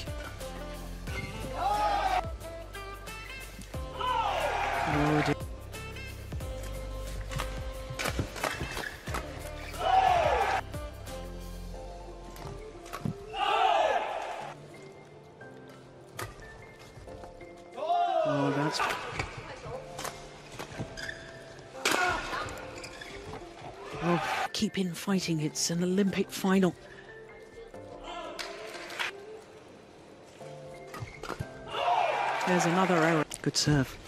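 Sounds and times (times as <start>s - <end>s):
shoes squeaking on court: 1.1s - 1.6s, 6.6s - 9.8s, 19.0s - 23.9s, 30.3s - 31.7s
players shouting: 1.4s - 2.3s, 3.9s - 5.4s, 9.7s - 10.6s, 13.3s - 14.6s
racket hitting shuttlecock: 7.3s - 9.3s.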